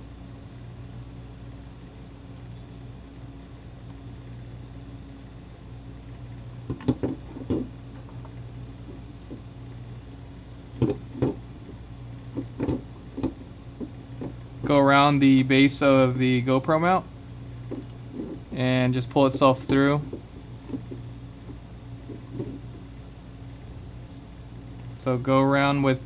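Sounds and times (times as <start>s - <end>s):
steady low hum: 0.0s - 26.0s.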